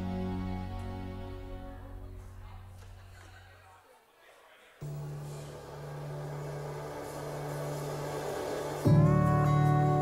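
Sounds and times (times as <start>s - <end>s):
background music chords: 0.0s - 2.7s, 4.8s - 10.0s.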